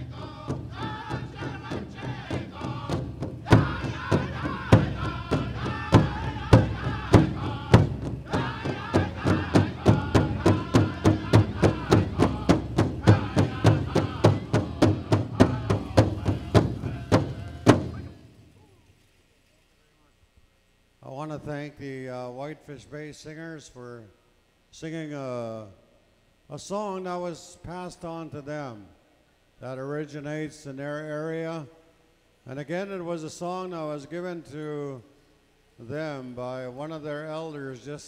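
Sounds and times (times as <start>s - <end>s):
big drum beating: 0.0s - 18.3s
drum group singing: 0.0s - 18.3s.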